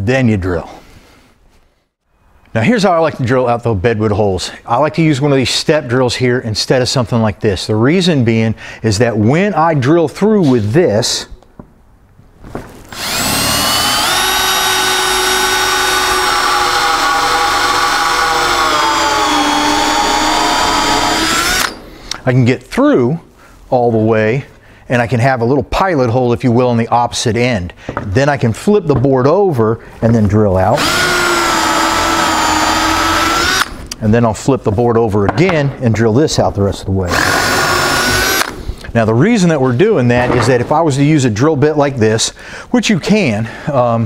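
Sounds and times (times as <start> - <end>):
cordless drill boring through wood: 12.9 - 21.8, 30.8 - 33.8, 37.1 - 38.6.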